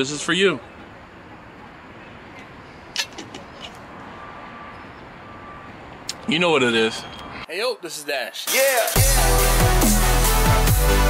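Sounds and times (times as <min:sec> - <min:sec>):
distant traffic hum: 0:00.0 - 0:08.5.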